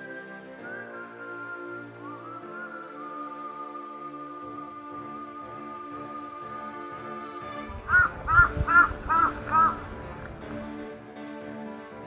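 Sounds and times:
background music: 0.0s - 12.0s
crow cawing: 7.8s - 10.2s.

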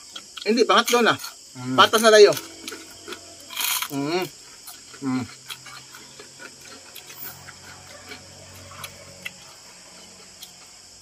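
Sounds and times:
crickets chirring: 0.0s - 11.0s
crunchy chewing: 0.0s - 11.0s
person humming mm: 5.0s - 5.6s.

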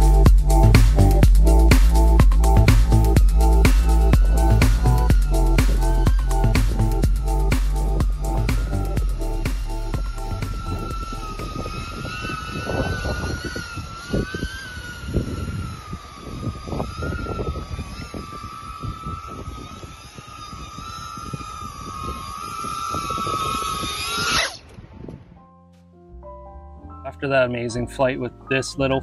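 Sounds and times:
drone motors whining: 0.0s - 24.8s
wind rushing on microphone: 0.0s - 25.4s.

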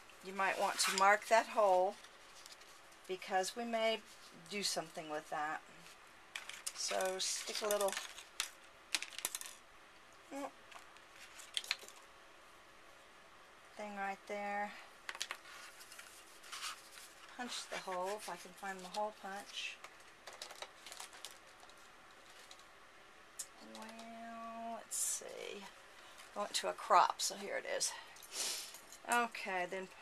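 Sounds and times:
paper cards clicking and tapping: 19.8s - 21.8s.

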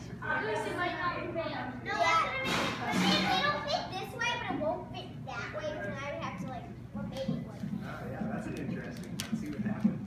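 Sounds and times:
children chattering: 0.2s - 6.2s.

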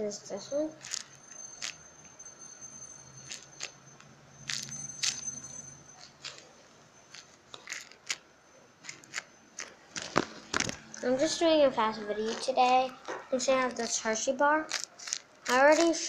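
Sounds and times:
tape crinkling and crackling: 0.8s - 1.8s, 3.2s - 3.8s, 5.9s - 6.5s, 7.1s - 8.2s, 8.8s - 11.1s, 12.2s - 16.0s.

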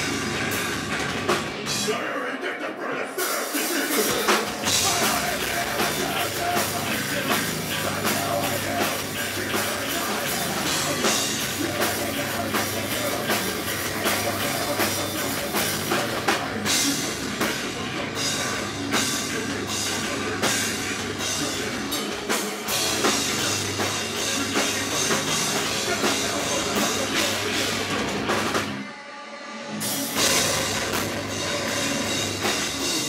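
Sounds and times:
drum kit: 0.0s - 2.2s, 3.2s - 33.0s
heavy rock band playing: 0.0s - 33.0s.

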